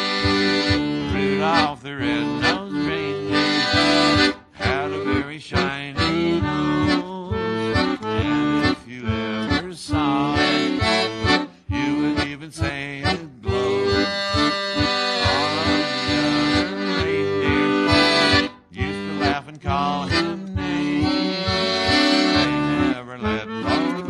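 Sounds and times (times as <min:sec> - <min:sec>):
accordion playing a tune: 0:00.0 - 0:24.0.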